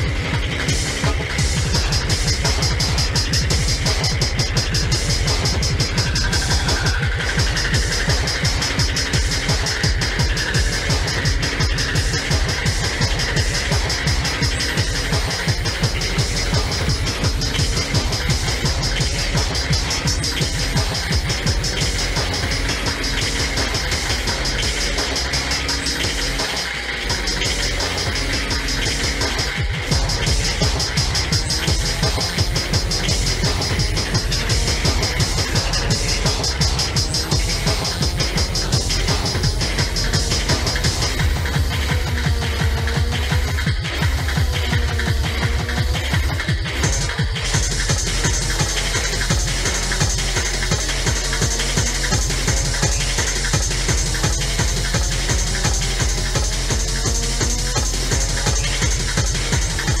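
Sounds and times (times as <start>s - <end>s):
fast kick drum: 0.0s - 60.0s
fast techno dance music: 0.0s - 60.0s
repeating hi-hat pattern: 0.0s - 60.0s.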